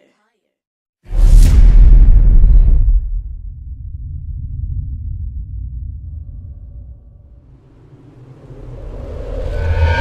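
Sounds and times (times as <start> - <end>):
low bass rumble: 1.2 - 10.0
rising swell of noise: 6.0 - 10.0.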